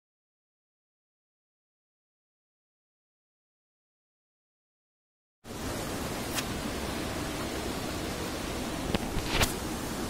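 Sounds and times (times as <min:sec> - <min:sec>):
water flowing over stones: 0:05.5 - 0:10.0.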